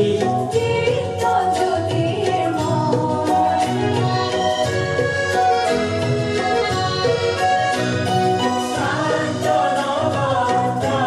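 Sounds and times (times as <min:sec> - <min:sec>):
instrumental accompaniment: 0:00.0 - 0:11.0
choir singing: 0:08.4 - 0:11.0.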